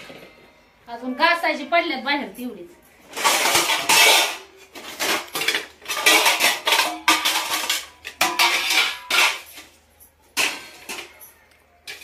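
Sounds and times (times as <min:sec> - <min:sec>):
steel plates and utensils clattering: 0:03.0 - 0:12.0.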